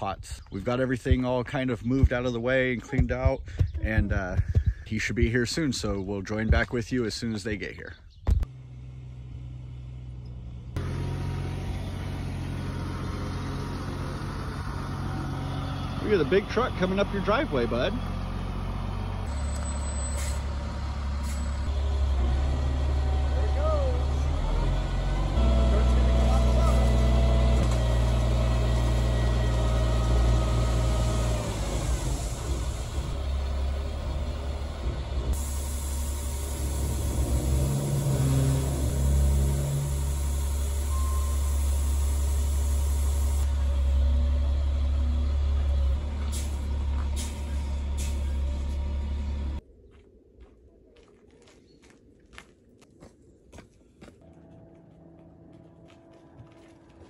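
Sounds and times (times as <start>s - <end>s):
diesel truck engine running: 8.4s - 49.6s.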